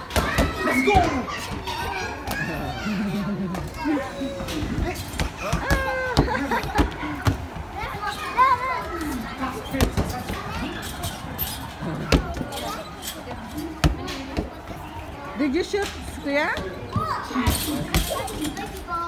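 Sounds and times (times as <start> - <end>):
children chattering: 0.0 - 19.0.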